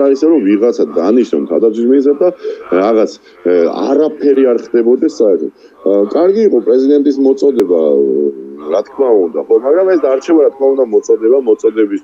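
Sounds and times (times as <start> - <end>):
man talking over video link: 0.0 - 12.0.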